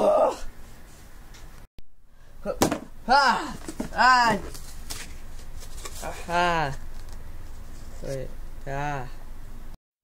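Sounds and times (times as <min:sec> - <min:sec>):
person shouting: 0:02.4 - 0:04.5.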